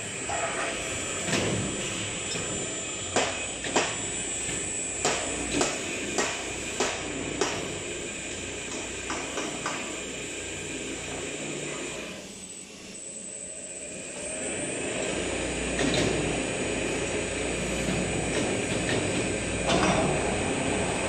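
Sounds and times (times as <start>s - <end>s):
workshop machinery rumble: 0.0s - 12.3s, 13.8s - 21.0s.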